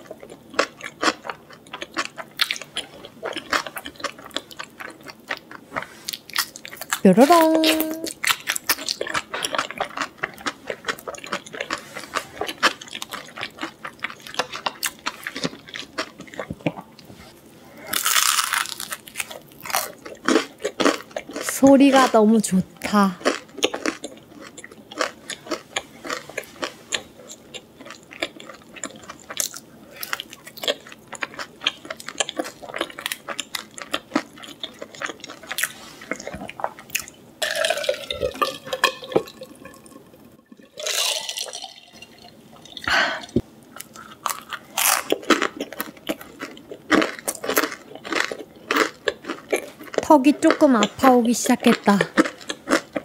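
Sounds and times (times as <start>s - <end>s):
crunchy chewing: 0.0s - 7.0s, 7.7s - 17.1s, 17.7s - 21.5s, 23.2s - 39.9s, 40.8s - 53.0s.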